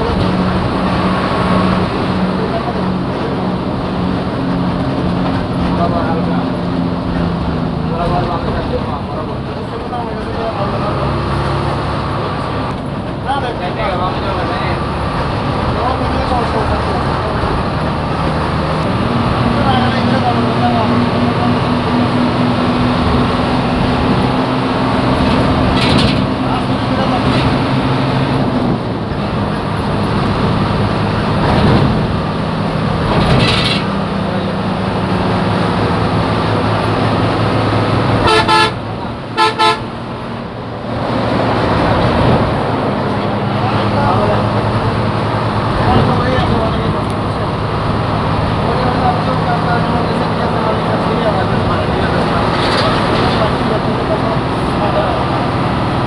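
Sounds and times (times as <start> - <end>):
bus engine and road rumble: 0.0 - 56.0
bus horn toots: 38.2 - 40.0.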